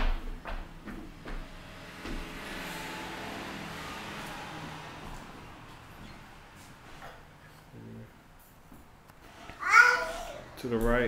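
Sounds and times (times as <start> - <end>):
footsteps on hardwood floor: 0.0 - 2.6, 5.0 - 7.6.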